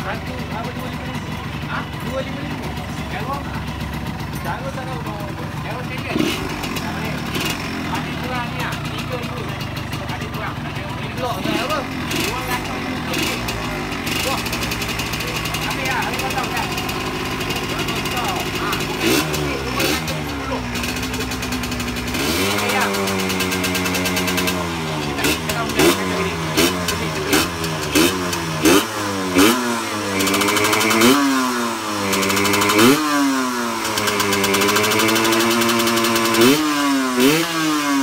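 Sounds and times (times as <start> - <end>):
motorcycle engine revving: 0.0 - 38.0.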